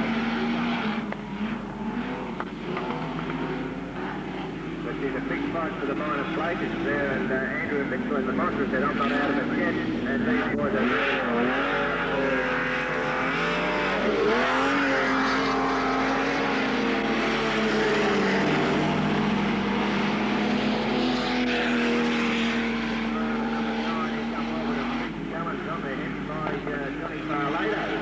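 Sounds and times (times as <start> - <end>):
stock car engines racing: 0.0 - 28.0
man's voice: 4.9 - 11.0.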